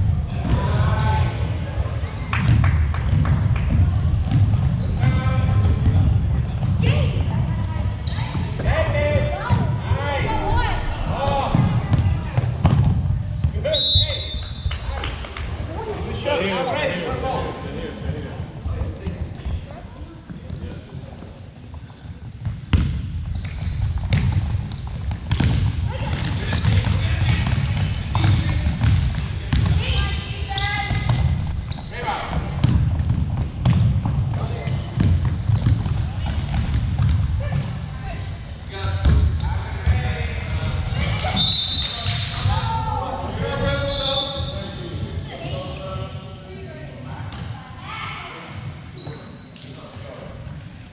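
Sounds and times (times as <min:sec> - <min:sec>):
voices echoing in hall: 0:00.0 - 0:22.6, 0:25.7 - 0:50.9
sneaker squeaks: 0:04.3 - 0:08.7, 0:13.6 - 0:14.7, 0:18.9 - 0:40.1, 0:40.9 - 0:42.6, 0:43.7 - 0:46.1, 0:48.8 - 0:50.0
basketball bouncing: 0:22.7 - 0:30.0, 0:32.3 - 0:37.7, 0:39.0 - 0:40.0.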